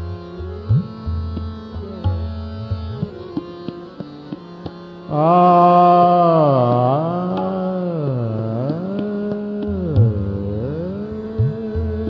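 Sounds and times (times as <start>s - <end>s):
tabla strokes: 0.0s - 5.2s, 6.1s - 12.0s
tanpura drone: 0.0s - 12.0s
man singing classical vocal: 5.0s - 12.0s.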